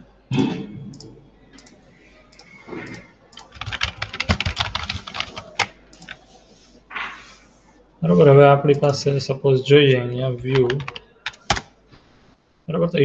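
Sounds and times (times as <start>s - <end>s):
keyboard typing: 0.9s - 6.4s, 10.4s - 11.8s.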